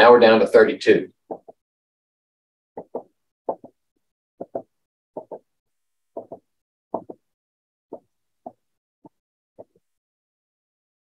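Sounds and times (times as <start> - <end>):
marker tapping on whiteboard: 1.3 - 1.6, 2.8 - 3.8, 4.4 - 5.5, 6.2 - 7.3.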